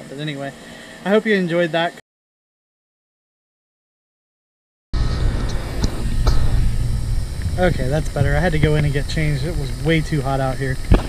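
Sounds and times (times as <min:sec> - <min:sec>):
wind buffeting microphone: 0:05.0 - 0:11.0.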